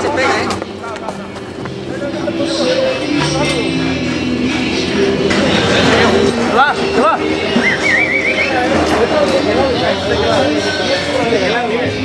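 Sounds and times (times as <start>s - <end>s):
people calling and talking: 0.0s - 12.0s
high wavering call: 7.6s - 8.7s.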